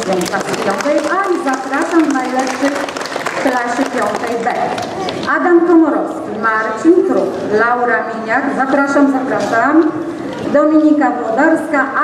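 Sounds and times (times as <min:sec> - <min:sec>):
audience applause: 0:00.0 - 0:05.1.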